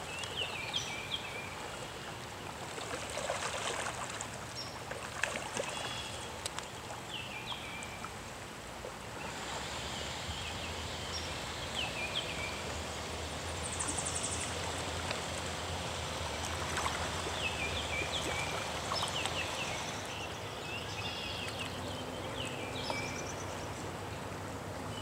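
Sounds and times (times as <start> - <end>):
floodwater rushing over grass: 2.5 - 7.0, 8.1 - 20.1.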